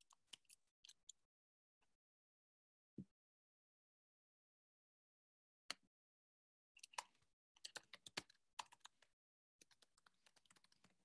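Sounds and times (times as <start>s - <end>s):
faint keyboard typing: 6.8s - 11.0s.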